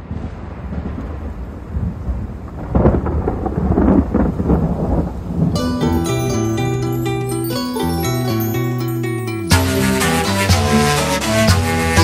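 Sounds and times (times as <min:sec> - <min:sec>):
thunder rumbling: 0:00.0 - 0:07.2
steady rain: 0:00.0 - 0:07.3
music with bright ringing notes: 0:05.6 - 0:12.0.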